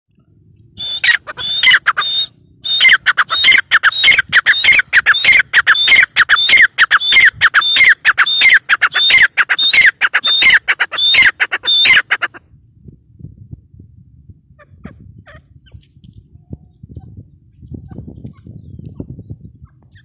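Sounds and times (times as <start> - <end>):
francolin calling: 0.8 - 12.4.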